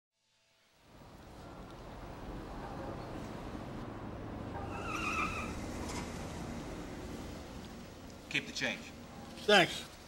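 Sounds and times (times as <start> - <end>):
low rumble of passing cars: 0.7 - 10.0
high wavering car squeal: 4.5 - 6.0.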